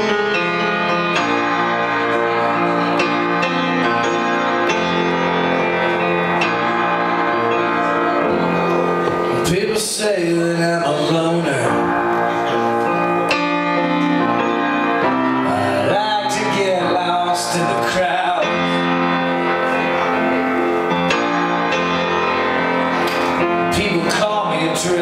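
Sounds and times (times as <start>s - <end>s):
upright piano chords: 0.0s - 25.0s
man singing: 9.3s - 12.0s, 15.4s - 18.9s, 23.7s - 25.0s.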